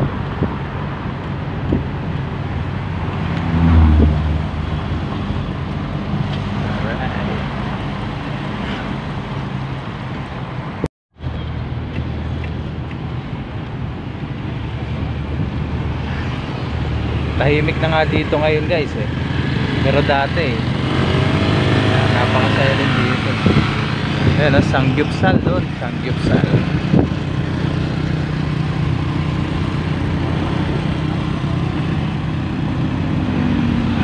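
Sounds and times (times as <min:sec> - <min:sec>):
road noise: 0:00.0 - 0:34.0
vehicle engine running: 0:16.8 - 0:34.0.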